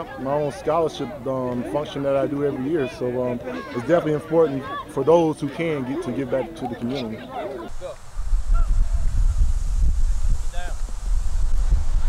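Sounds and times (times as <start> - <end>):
wind buffeting microphone: 7.7 - 12.0.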